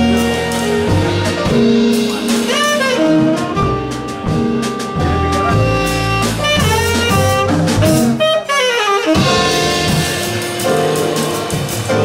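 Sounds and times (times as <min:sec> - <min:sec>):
saxophone melody: 0:00.0 - 0:11.6
piano bass and drums: 0:00.0 - 0:12.0.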